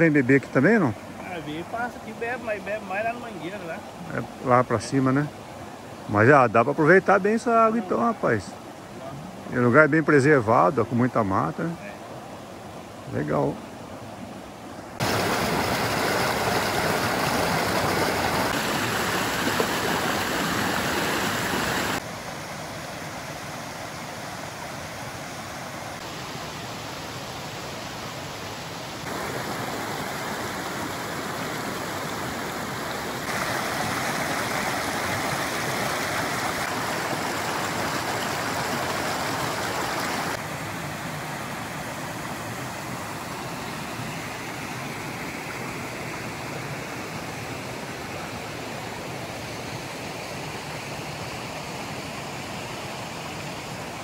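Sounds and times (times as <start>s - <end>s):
stream rushing over stones: 0.0s - 54.0s.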